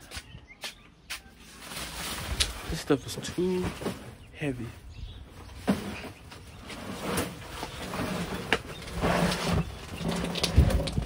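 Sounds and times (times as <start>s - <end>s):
trash bag rustling: 1.5s - 4.7s.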